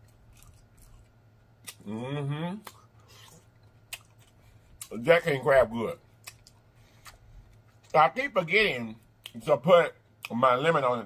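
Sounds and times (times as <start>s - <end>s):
person humming mmm: 1.8s - 2.8s.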